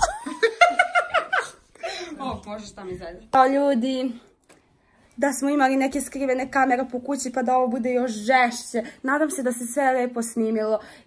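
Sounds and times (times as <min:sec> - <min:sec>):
woman laughing: 0:00.0 - 0:01.9.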